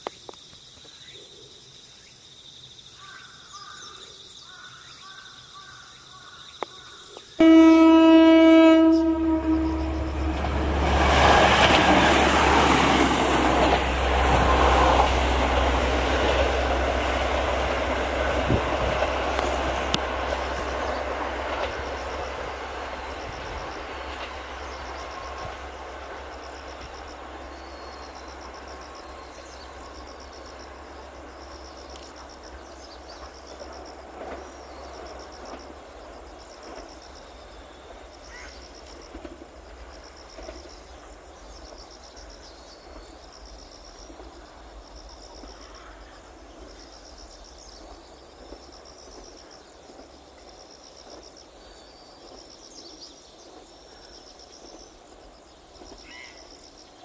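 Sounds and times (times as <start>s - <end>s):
insects chirping: 0.0s - 57.0s
train horn blast: 7.4s - 11.8s
train running noise: 7.4s - 57.0s.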